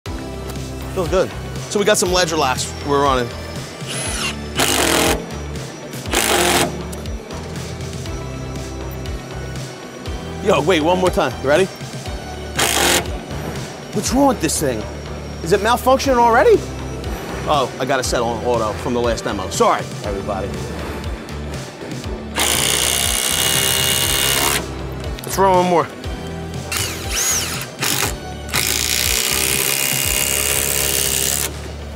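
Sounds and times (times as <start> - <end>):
background music: 0.0 - 31.9
impact driver driving screw: 3.9 - 5.2, 6.1 - 7.0, 12.6 - 13.1, 22.4 - 24.6, 26.7 - 31.6.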